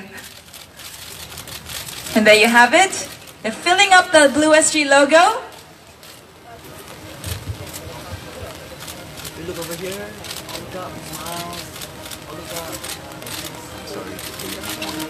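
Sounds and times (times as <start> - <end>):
people talking and murmuring: 0.0 - 15.0.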